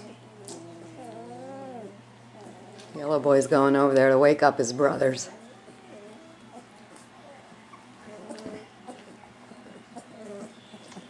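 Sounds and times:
puppy whining: 0.0 - 3.2, 5.1 - 11.0.

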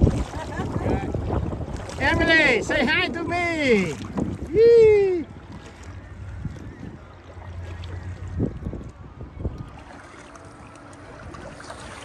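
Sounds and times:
water sloshing against hull: 0.0 - 12.0
wind rumble on microphone: 0.0 - 12.0.

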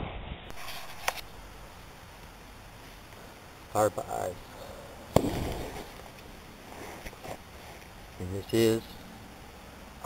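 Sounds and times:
faint background hiss: 0.5 - 10.0.

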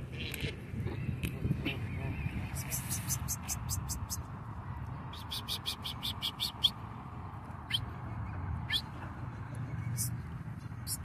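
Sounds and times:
small birds chirping: 0.8 - 6.8, 7.6 - 11.0.

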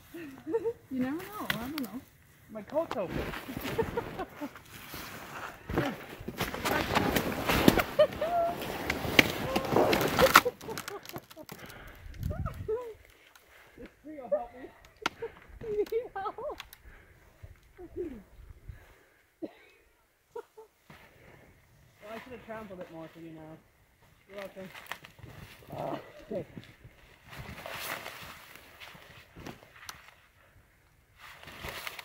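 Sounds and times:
branches scraping jackets: 0.9 - 13.7, 24.3 - 30.3, 31.1 - 32.0
snowshoe footsteps crunching snow: 1.0 - 11.1.

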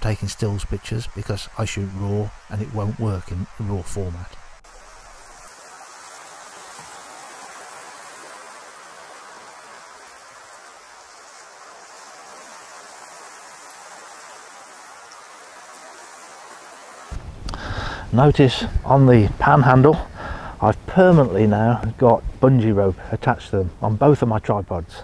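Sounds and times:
steady background hiss: 0.0 - 25.0.

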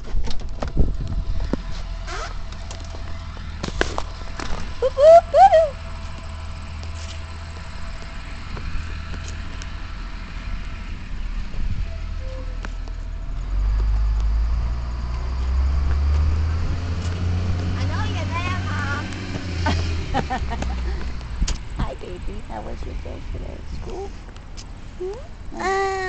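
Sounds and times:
diesel bus engine rumbling: 0.0 - 26.0
child's voice: 17.8 - 19.0, 25.0 - 26.0.

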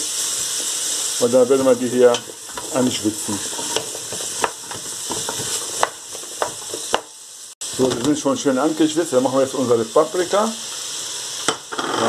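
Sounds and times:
vegetables sizzling in oil: 0.0 - 12.0
wooden spoon knocking on pot: 3.6 - 7.1.

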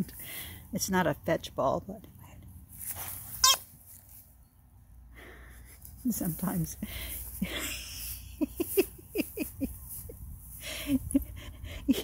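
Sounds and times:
toy ball squealing: 3.4 - 3.6.

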